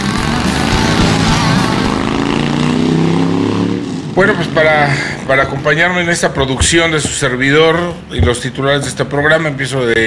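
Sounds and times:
motorcycle engine revving high: 0.0s - 6.0s.

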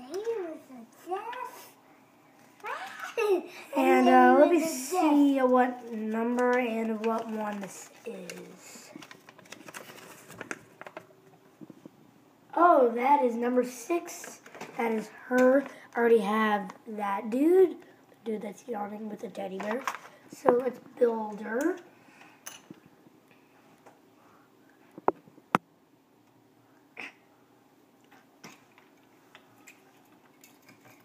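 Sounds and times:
paper leaflet handling: 6.3s - 11.1s.

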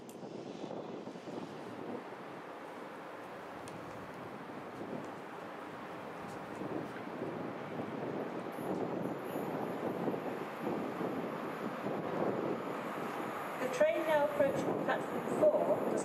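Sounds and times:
low rumble of approaching train: 0.0s - 16.0s
wind noise on microphone: 0.0s - 16.0s.

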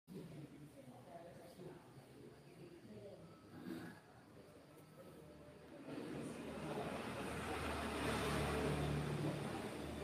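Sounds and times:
motor vehicle passing: 5.9s - 10.0s.

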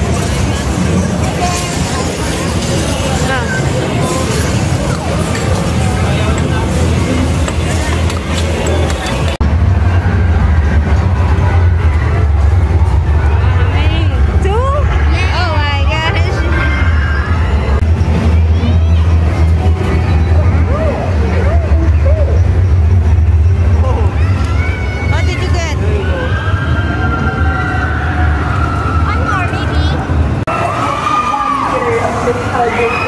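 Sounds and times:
background chatter: 0.0s - 33.0s.

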